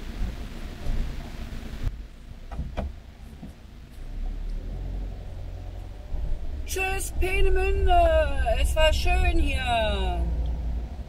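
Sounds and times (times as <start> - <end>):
engine and road rumble: 0.0 - 11.0.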